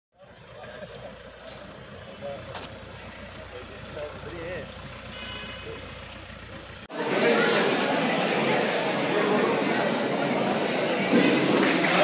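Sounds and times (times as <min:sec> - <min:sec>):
vehicle engine idling: 0:00.2 - 0:06.9.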